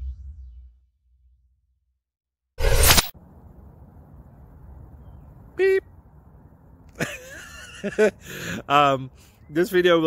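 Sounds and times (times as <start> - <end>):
low outdoor rumble: 3.2 - 7.4.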